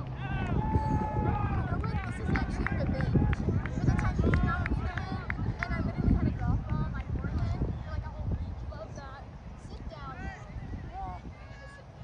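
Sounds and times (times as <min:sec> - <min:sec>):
distant shouting voices: 0:00.0 - 0:05.4, 0:10.0 - 0:12.0
wind on microphone: 0:00.0 - 0:12.0.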